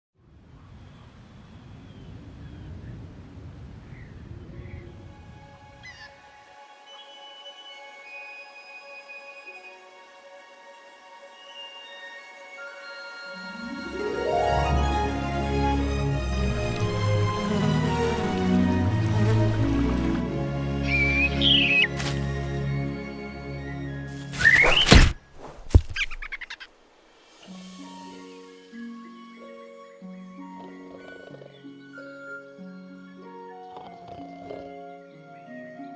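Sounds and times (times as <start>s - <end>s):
soft sustained music: 4.7s - 24.6s, 27.2s - 35.9s
bird chirps: 20.8s - 22.0s, 24.2s - 25.0s, 25.9s - 26.7s.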